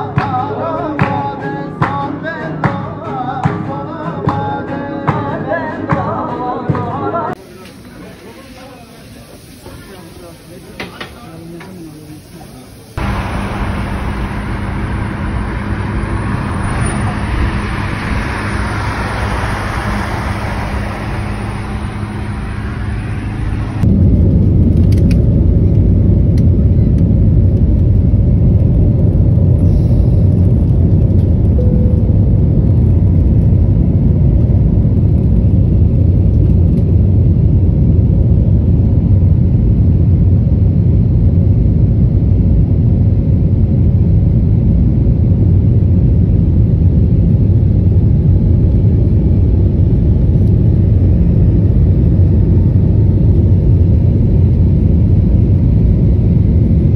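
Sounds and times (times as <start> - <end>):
jet engine and airflow rumble: 7.3 - 56.9.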